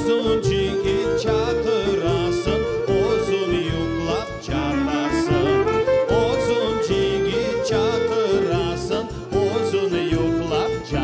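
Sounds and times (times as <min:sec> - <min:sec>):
folk ensemble playing: 0:00.0 - 0:11.0.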